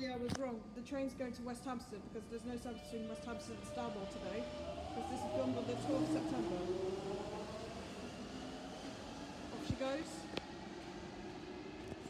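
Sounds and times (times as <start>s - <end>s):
station passageway hum: 0.8s - 12.0s.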